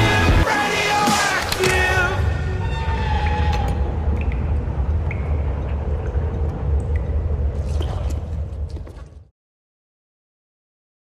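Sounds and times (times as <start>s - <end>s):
deep cinematic drone: 2.0s - 8.8s.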